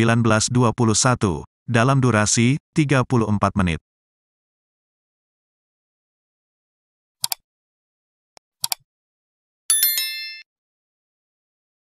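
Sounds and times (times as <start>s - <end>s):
double mouse clicks: 7.2s - 7.4s, 8.6s - 8.8s
notification bell chime: 9.7s - 10.5s.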